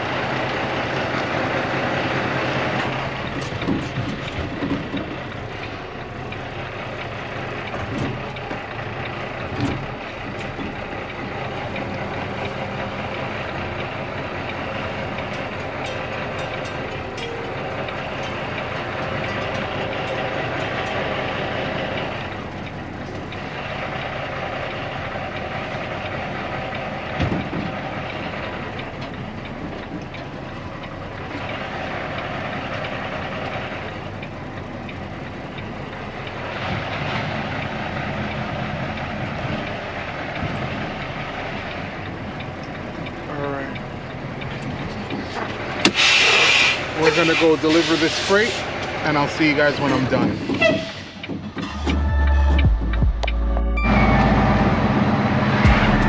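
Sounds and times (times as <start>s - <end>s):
diesel truck engine running: 0.0s - 56.0s.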